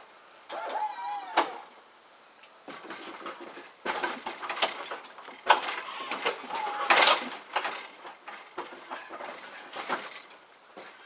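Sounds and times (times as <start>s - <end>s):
suspension clacks and clunks: 2.6s - 11.0s.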